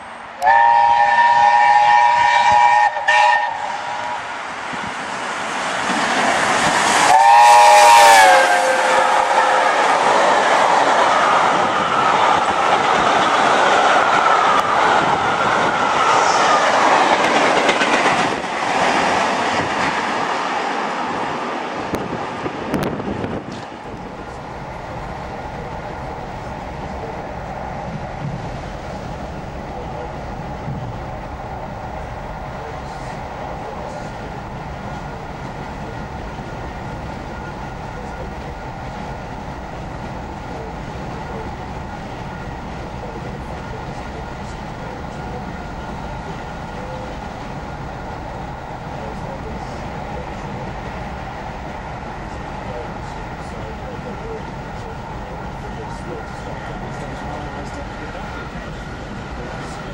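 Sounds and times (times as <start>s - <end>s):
train rumble: 0.0s - 59.9s
train rushing past: 0.0s - 59.9s
train horn chord: 0.4s - 4.3s, 7.1s - 10.1s.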